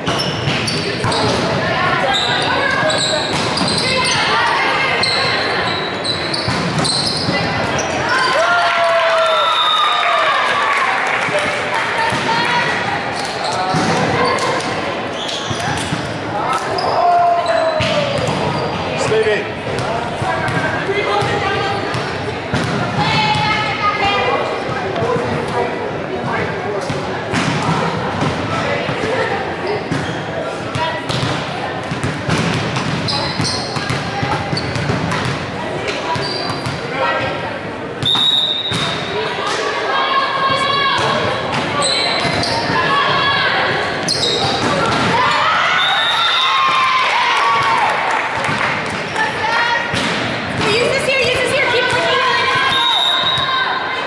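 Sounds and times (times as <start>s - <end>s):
players and spectators calling out: 0.0s - 54.0s
referee's whistle: 38.0s - 39.0s, 45.7s - 46.6s, 52.7s - 53.6s.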